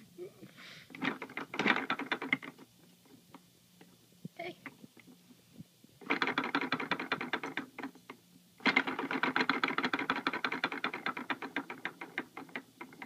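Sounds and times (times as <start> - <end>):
plastic rattle toy clicking: 6.0 - 7.9, 8.6 - 13.0.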